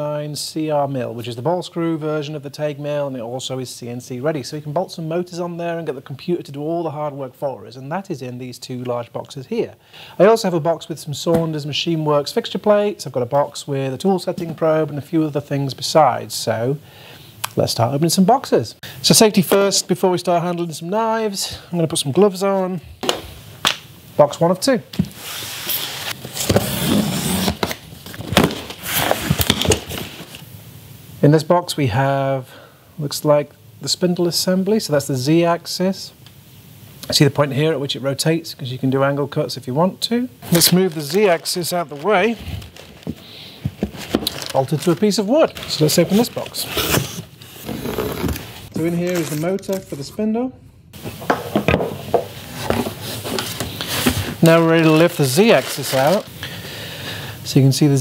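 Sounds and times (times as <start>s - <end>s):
cardboard flaps scraping: 25.0s - 30.4s, 40.5s - 48.8s, 51.0s - 56.3s
packing paper rustling: 25.1s - 30.5s, 40.4s - 50.1s, 51.0s - 56.7s.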